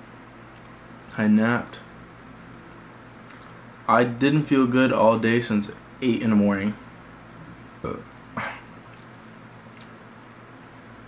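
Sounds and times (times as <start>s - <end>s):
man burping: 7.8s - 8.7s.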